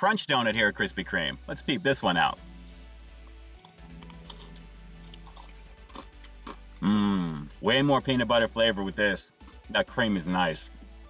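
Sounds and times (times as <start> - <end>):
quiet background music: 0.3 - 11.0
crunchy bite and chewing: 5.0 - 7.5.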